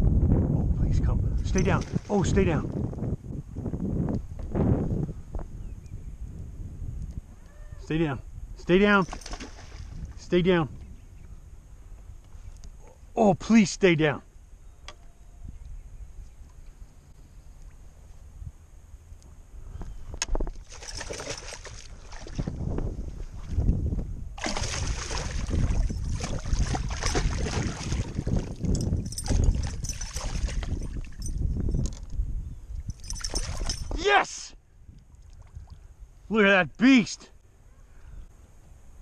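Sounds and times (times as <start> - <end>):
fish thrashing and splashing: 9.1 - 10.0, 20.6 - 22.6, 24.4 - 31.3, 33.0 - 33.9.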